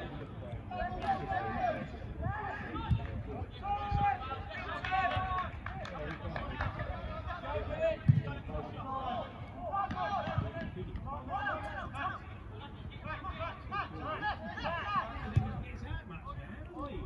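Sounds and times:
players shouting: 0:08.8 - 0:15.4.

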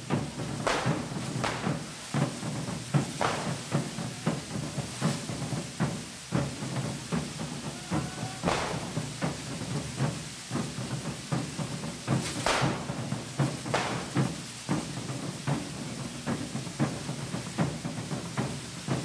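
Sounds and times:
firework fountains fizzing: 0:00.0 - 0:19.0
sharp firework bangs and cracks: 0:00.0 - 0:19.0.

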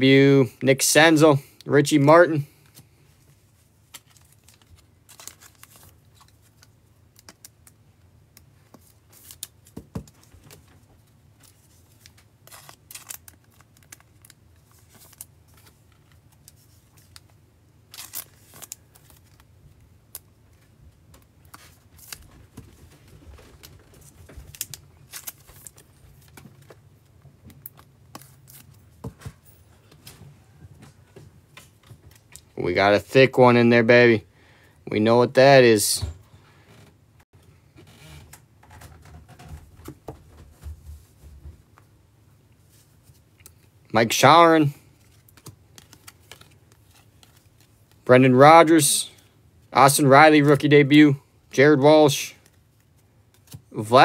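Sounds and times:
foil packs torn open: 0:04.0 - 0:07.5, 0:12.0 - 0:15.3, 0:17.9 - 0:19.4
cards flicked and shuffled: 0:45.0 - 0:48.0, 0:52.4 - 0:53.8.

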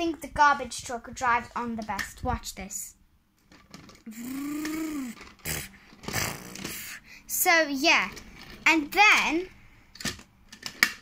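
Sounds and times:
child imitating vehicle engine: 0:04.0 - 0:07.0.

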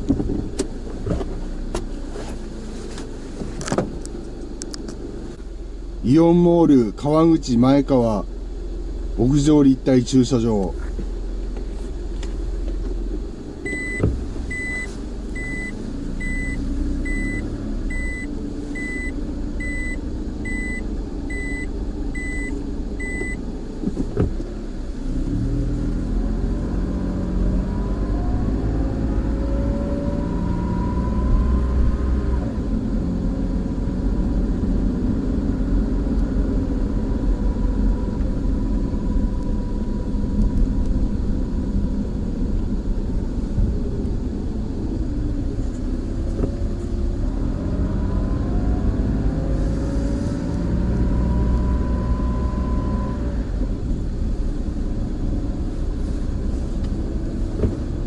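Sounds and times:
car engine rumble: 0:00.0 - 0:58.0
rising engine whine: 0:00.0 - 0:58.0
reverse warning beeper: 0:13.7 - 0:23.4.

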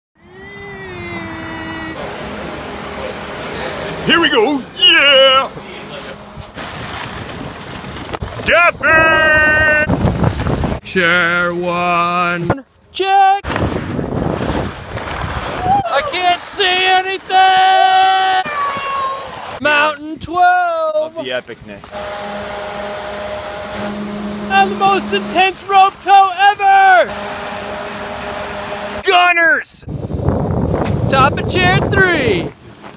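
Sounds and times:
steady hum: 0:00.6 - 0:07.0, 0:21.9 - 0:29.1
snowmaking gun rushing hiss: 0:02.0 - 0:07.9, 0:15.5 - 0:19.6, 0:21.9 - 0:32.9
wind on microphone: 0:06.2 - 0:10.8, 0:13.5 - 0:15.9, 0:29.8 - 0:32.9.

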